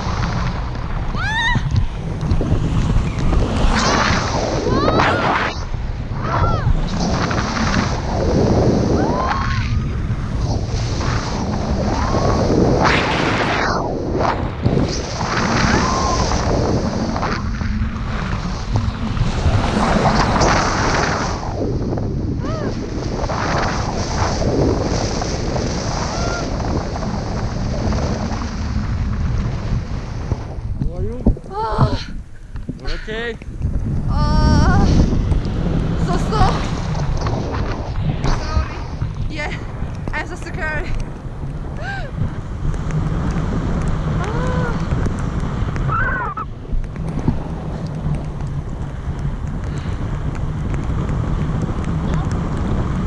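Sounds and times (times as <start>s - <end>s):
gusty wind on microphone: 0.0s - 53.0s.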